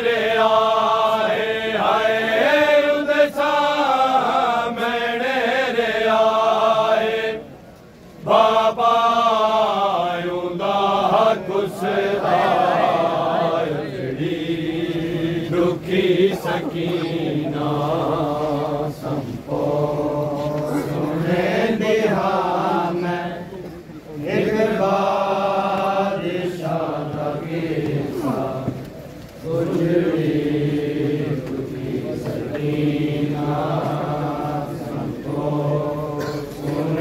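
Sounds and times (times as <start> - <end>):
men chanting a lament: 0.0 - 7.4, 8.2 - 28.8, 29.4 - 37.0.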